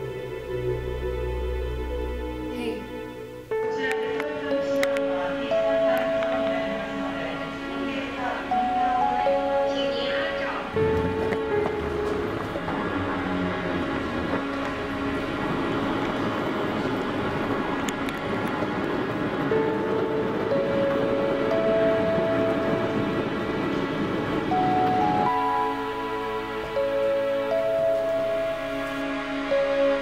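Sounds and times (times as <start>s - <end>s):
low mechanical noise: 0.0s - 30.0s
slow background music: 0.0s - 30.0s.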